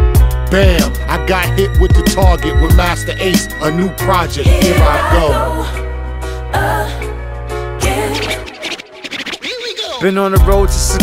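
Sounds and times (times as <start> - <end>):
hip-hop beat bass: 0.0 - 5.8, 7.8 - 11.0
turntable scratching: 7.8 - 10.2.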